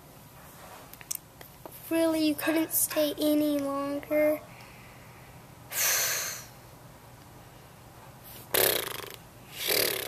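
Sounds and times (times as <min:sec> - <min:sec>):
boy blowing through lips: 0:05.7 - 0:06.5, 0:08.5 - 0:10.0
boy breathy exhale: 0:05.7 - 0:06.6.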